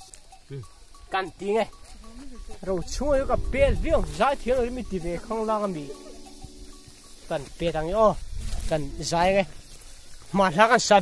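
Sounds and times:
man talking: 0.5 - 1.8, 2.6 - 6.1, 7.2 - 9.6, 10.3 - 11.0.

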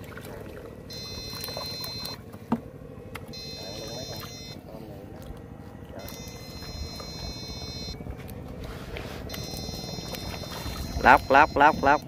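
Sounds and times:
steady low rumble: 0.0 - 12.0
high-pitched electronic whine: 0.9 - 2.2, 3.3 - 4.6, 6.0 - 8.1, 9.3 - 12.0.

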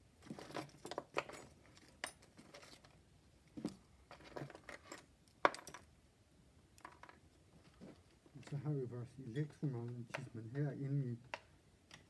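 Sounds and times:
small metal parts clinking: 0.2 - 3.0, 4.1 - 5.9.

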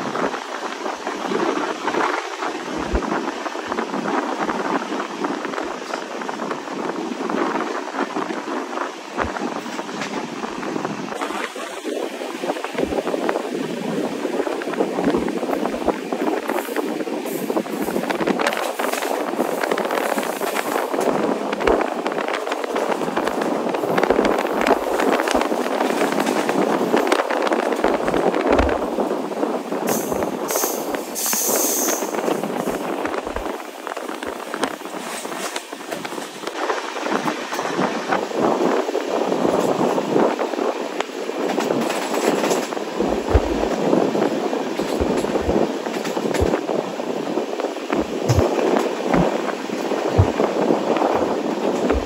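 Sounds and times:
wheels rushing on rail: 0.0 - 52.0
high hiss: 29.9 - 32.6.

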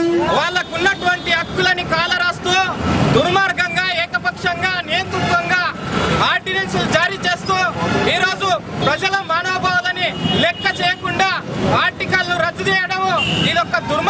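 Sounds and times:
man talking loudly: 0.0 - 14.0.

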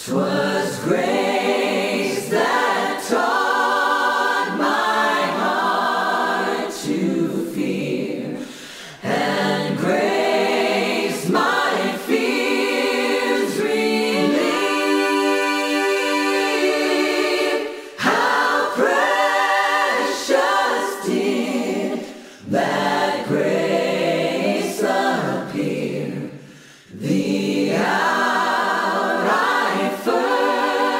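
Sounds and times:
choir singing unaccompanied: 0.0 - 30.9.

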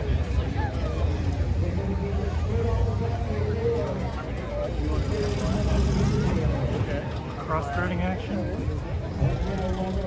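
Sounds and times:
monster truck engine running hard: 0.0 - 10.0
spectators chatting: 0.0 - 10.0.

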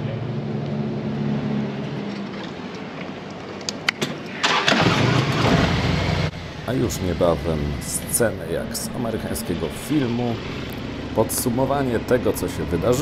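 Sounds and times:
low steady engine hum: 0.0 - 3.9, 5.8 - 13.0.

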